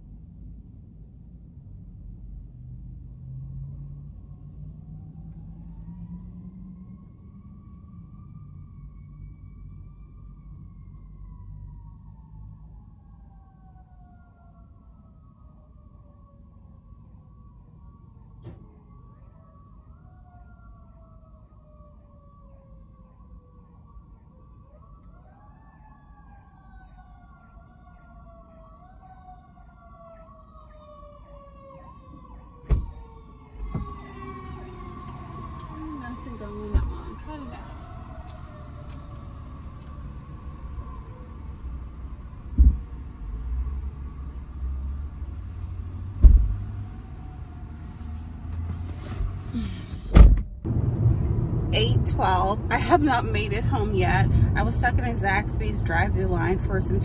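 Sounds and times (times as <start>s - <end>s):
low steady rumble: 0.0s - 7.7s, 48.8s - 57.0s
siren wailing: 3.7s - 42.9s
sharp thumps: 42.6s - 42.9s.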